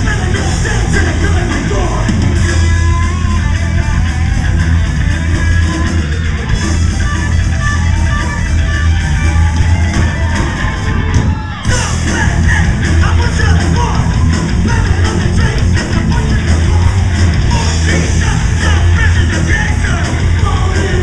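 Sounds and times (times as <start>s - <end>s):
bass guitar: 0.0s - 21.0s
distorted electric guitar: 0.0s - 21.0s
drums: 0.0s - 21.0s
thrash metal band playing: 0.0s - 21.0s.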